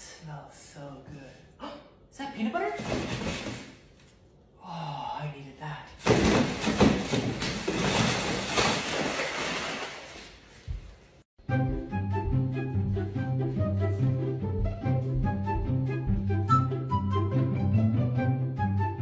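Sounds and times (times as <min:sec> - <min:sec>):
plastic garbage bag rustling: 0:06.0 - 0:11.2.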